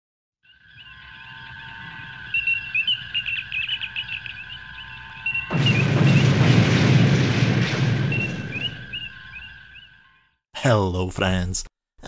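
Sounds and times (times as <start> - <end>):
steady high tones: 0.4 - 10.2
warbling bird-like chirping: 0.4 - 10.4
loud rushing burst: 5.3 - 9.4.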